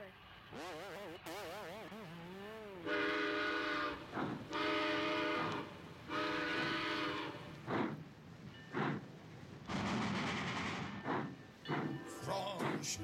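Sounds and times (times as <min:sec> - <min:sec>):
steam train whistle: 0:02.8 - 0:07.6
steam puffs: 0:04.0 - 0:08.1, 0:08.7 - 0:12.0.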